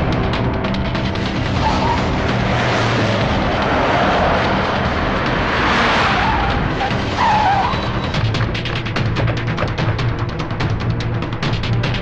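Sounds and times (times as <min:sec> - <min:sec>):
car engine driving fast: 0:00.0 - 0:12.0
dramatic background music: 0:00.0 - 0:12.0
tyres skidding: 0:00.0 - 0:12.0
tyre squeal: 0:01.6 - 0:02.2, 0:05.8 - 0:08.3.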